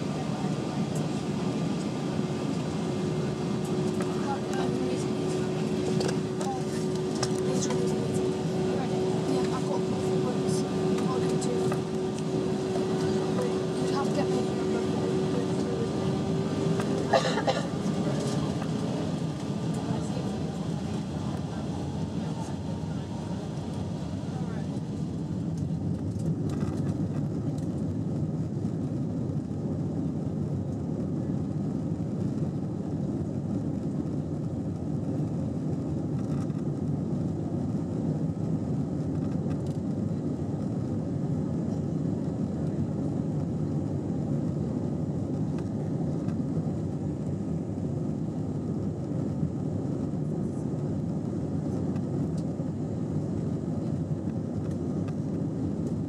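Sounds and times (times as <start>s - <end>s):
faint engine whine: 0.0s - 56.0s
jet engine cabin rumble: 0.0s - 56.0s.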